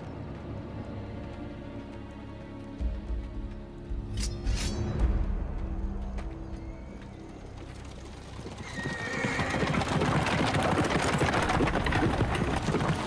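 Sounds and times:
low music: 0:00.0 - 0:08.3
fast hoofbeats: 0:07.4 - 0:13.0
horse whinnying: 0:08.6 - 0:10.2.

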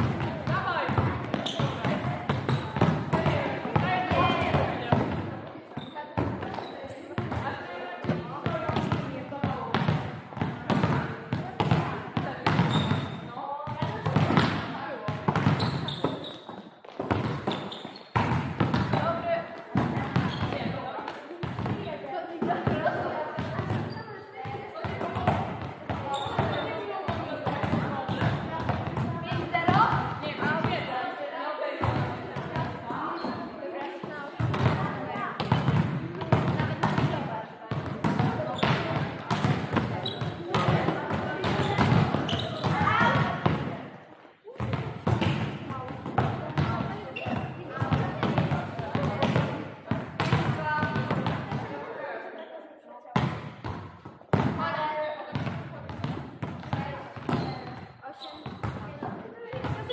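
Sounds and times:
volleyball hits and bounces: 0:00.0 - 0:31.0, 0:31.8 - 0:51.9, 0:53.2 - 0:59.9
hubbub of voices echoing: 0:00.0 - 0:59.9.

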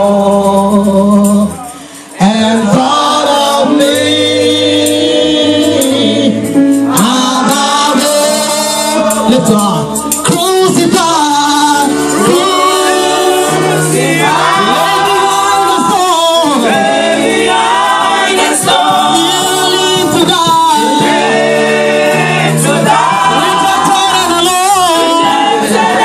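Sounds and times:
congregation singing: 0:00.0 - 0:26.0
low instrumental accompaniment: 0:02.7 - 0:26.0.

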